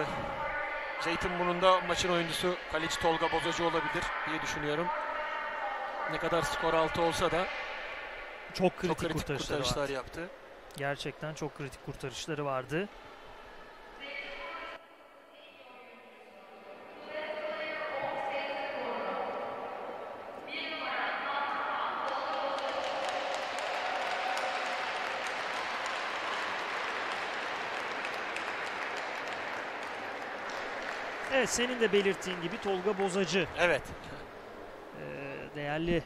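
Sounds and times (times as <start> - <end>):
crowd applauding: 22.0 - 34.8.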